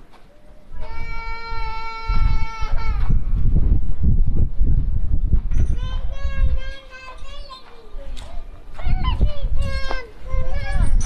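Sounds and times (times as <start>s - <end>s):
low rumble on microphone: 0.7s - 6.8s
high-pitched voices calling out: 5.6s - 11.0s.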